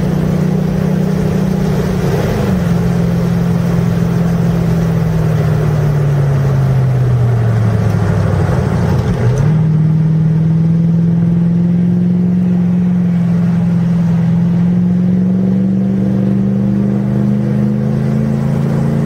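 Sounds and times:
car engine from inside cabin: 0:00.0 - 0:19.0.

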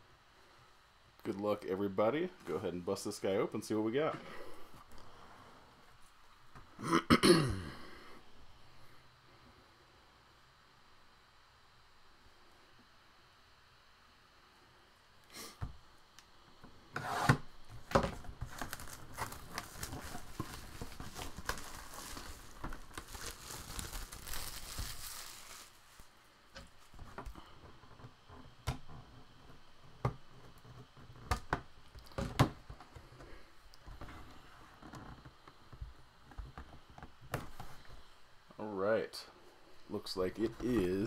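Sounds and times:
shrink wrap crinkling: 0:17.9 - 0:27.0.

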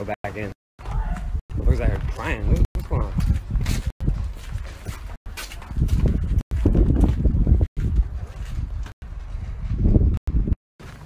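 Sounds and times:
footsteps on dirt: 0:00.8 - 0:11.0.

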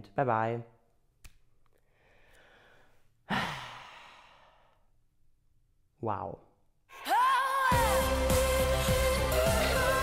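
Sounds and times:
man sighing: 0:02.4 - 0:04.8.

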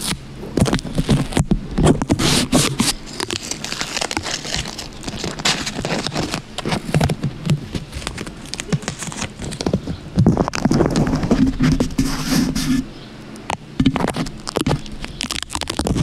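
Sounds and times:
fingernails scratching microphone cover: 0:00.0 - 0:12.9, 0:13.8 - 0:16.0.

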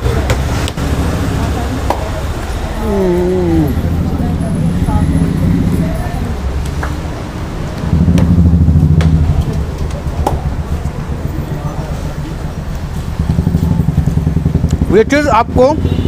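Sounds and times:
road vehicle engines rumbling: 0:00.0 - 0:16.0.

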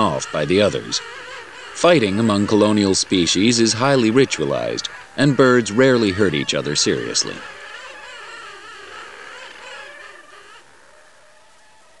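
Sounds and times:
penguin colony calling: 0:00.0 - 0:12.0.

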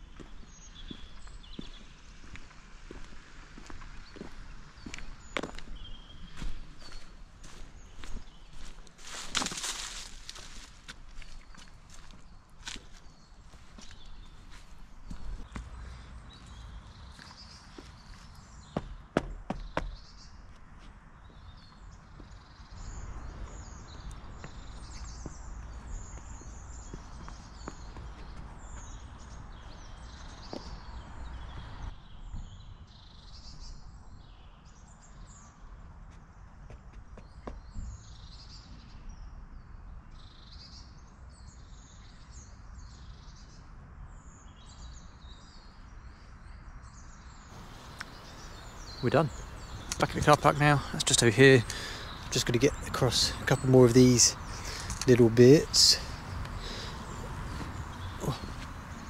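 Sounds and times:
songbirds chirping: 0:00.0 - 0:59.0
footsteps on a log: 0:00.1 - 0:16.5, 0:17.1 - 0:20.0, 0:24.4 - 0:29.2, 0:56.2 - 0:59.0.

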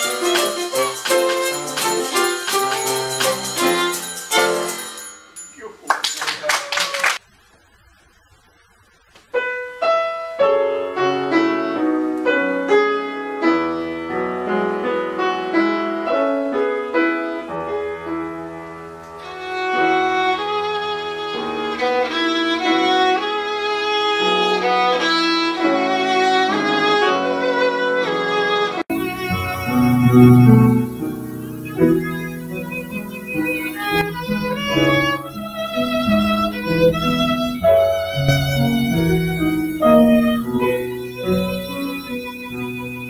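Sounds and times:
violin and piano tune: 0:00.0 - 0:05.0, 0:10.1 - 0:43.0.

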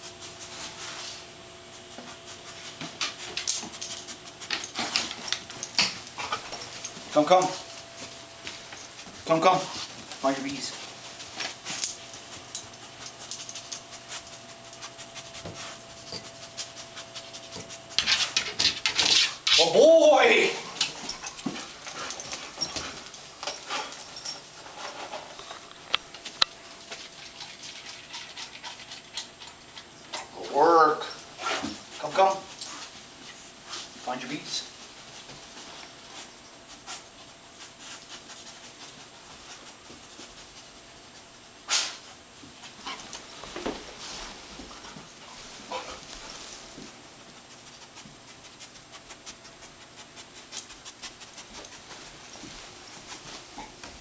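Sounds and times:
dog sniffing and breathing: 0:00.0 - 0:19.6, 0:20.6 - 0:25.4, 0:31.0 - 0:54.0.

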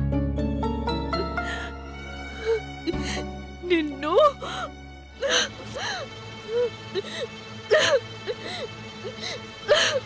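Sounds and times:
background music: 0:00.0 - 0:10.0
woman sobbing: 0:01.1 - 0:10.0.

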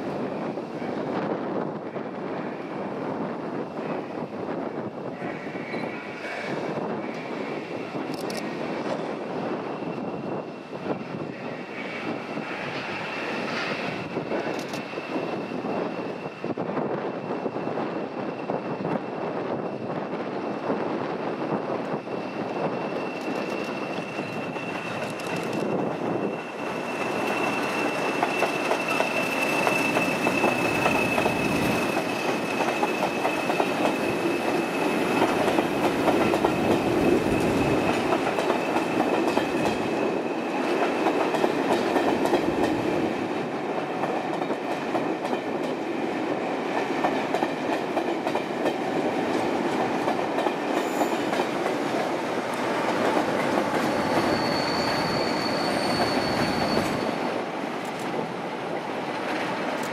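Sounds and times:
train rolling rumble: 0:00.0 - 0:59.9
thin high whistle: 0:54.0 - 0:57.2.

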